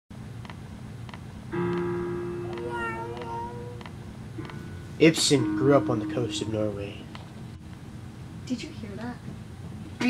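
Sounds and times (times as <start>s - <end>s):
held tone: 4.4s - 7.6s.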